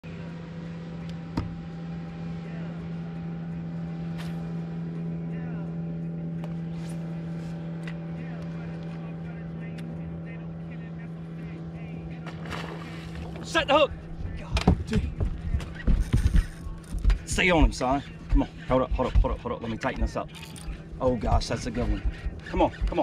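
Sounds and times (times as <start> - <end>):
electric trolling motor humming: 0.0 - 18.7.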